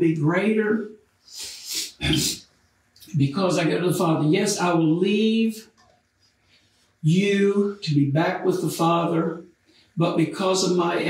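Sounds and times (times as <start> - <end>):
man breathing: 1.2 - 2.0, 9.6 - 10.0.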